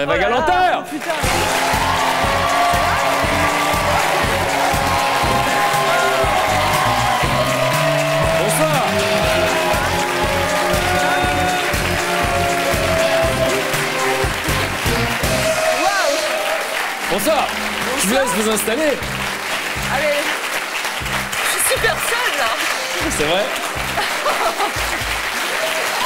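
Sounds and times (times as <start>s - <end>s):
upbeat music with steady beat: 0.0s - 16.3s, 17.1s - 25.6s
audience applauding: 0.0s - 26.0s.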